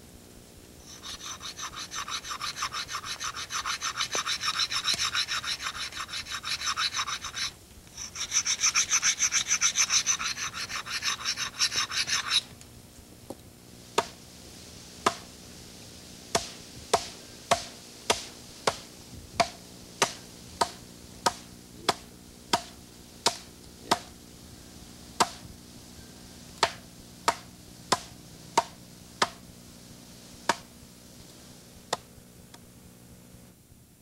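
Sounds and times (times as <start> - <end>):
axe pounding a log: 15.0 - 15.2, 16.3 - 18.8, 19.4 - 24.1, 25.2 - 25.4, 26.6 - 29.4.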